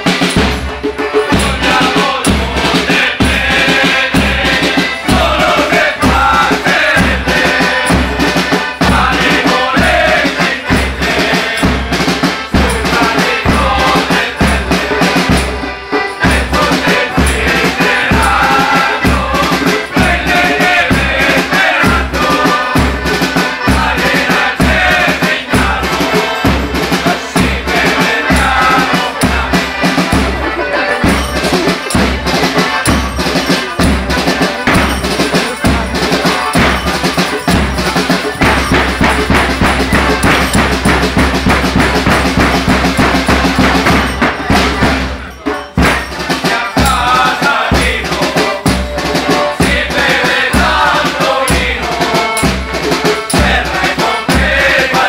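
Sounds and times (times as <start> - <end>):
live band music: 0.0 - 55.0.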